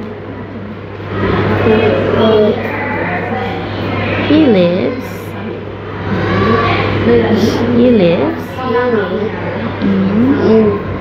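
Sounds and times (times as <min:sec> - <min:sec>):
child reading aloud: 0:06.0 - 0:07.7, 0:08.4 - 0:09.4.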